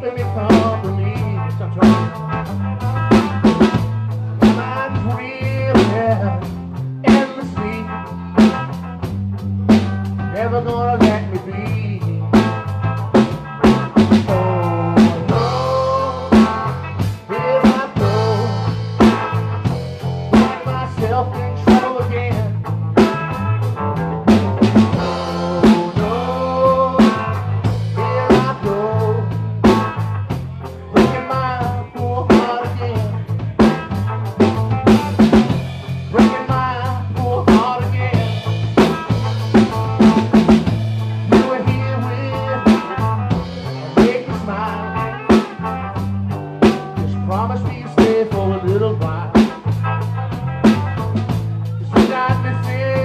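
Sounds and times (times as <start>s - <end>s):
bass guitar: 0.0s - 53.0s
drum kit: 0.0s - 53.0s
electric guitar: 0.0s - 53.0s.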